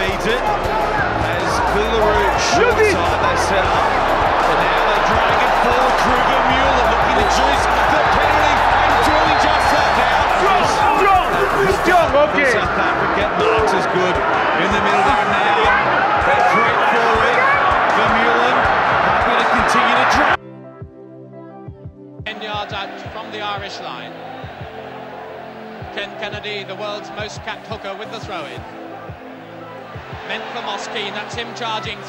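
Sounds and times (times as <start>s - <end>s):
stadium crowd voices: 0.0s - 20.4s, 22.3s - 32.0s
background music with low beat: 0.0s - 32.0s.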